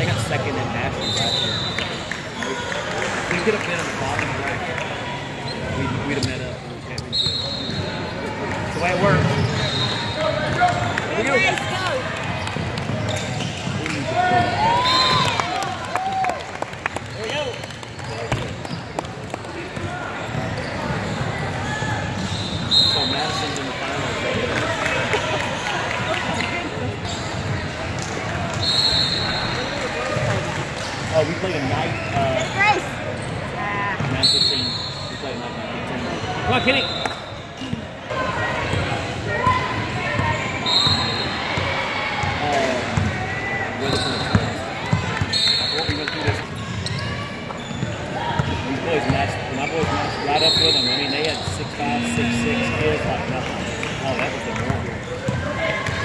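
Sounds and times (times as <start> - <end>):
voices in a large gym: 0.0 - 56.0
sneakers squeaking: 5.2 - 11.5, 12.2 - 15.3, 19.8 - 23.7, 25.5 - 38.0, 43.8 - 56.0.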